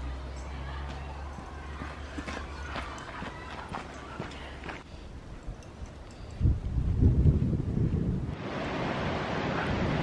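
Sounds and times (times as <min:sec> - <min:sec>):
footsteps crunching on gravel: 0:00.9 - 0:04.8.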